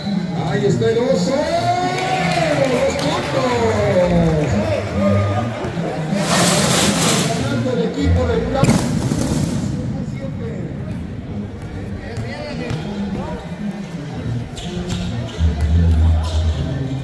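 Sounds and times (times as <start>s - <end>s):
crowd chatter: 0.0s - 17.0s
fireworks rockets hissing: 6.2s - 7.6s.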